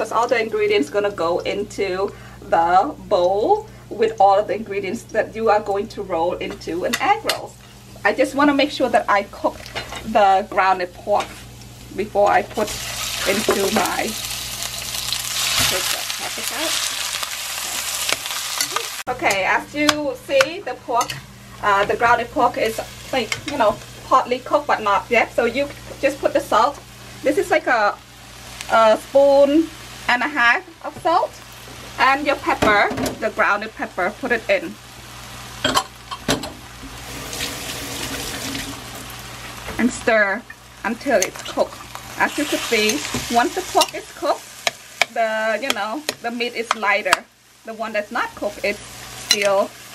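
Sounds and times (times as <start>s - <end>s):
meat sizzling in a frying pan: 0.0s - 49.9s.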